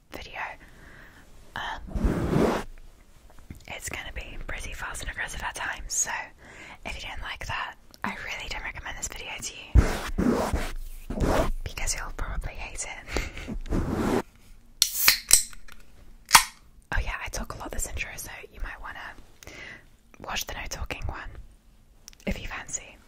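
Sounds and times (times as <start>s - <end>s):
hands rubbing microphone foam: 1.8s - 2.7s, 9.8s - 11.7s, 13.4s - 14.2s.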